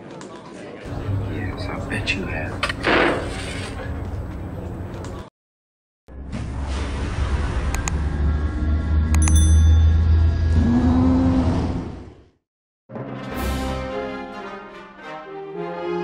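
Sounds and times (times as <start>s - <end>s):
short ringing chime: 9.2s - 10.4s
brass theme music: 12.9s - 16.0s.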